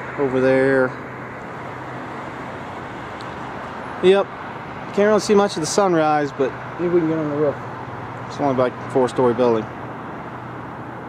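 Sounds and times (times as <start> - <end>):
road traffic hiss: 0.0 - 11.0.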